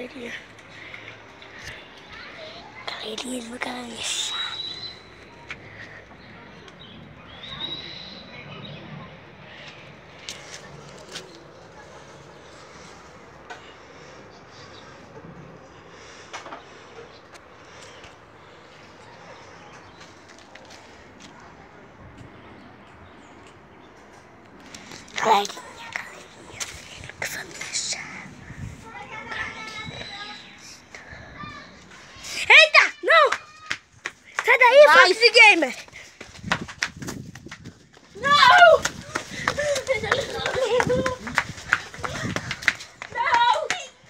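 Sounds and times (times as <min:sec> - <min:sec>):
distant children calling: 0:00.0 - 0:23.7, 0:24.8 - 0:36.3
low steady background noise: 0:00.0 - 0:36.3.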